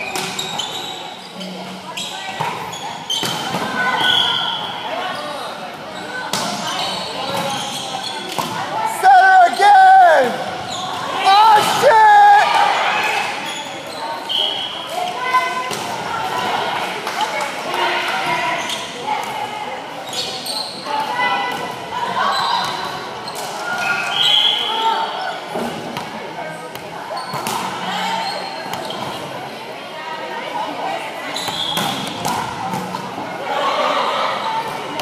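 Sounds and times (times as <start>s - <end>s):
sneakers squeaking on wooden court: 0.0s - 8.6s, 10.5s - 11.2s, 13.4s - 14.8s, 27.1s - 29.3s, 31.3s - 33.0s
players talking: 0.6s - 23.2s
loud shouts: 8.7s - 13.4s.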